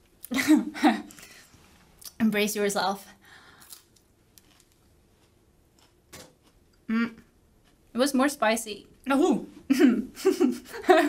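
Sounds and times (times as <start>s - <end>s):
chili pepper crunching: 3.6s - 6.9s.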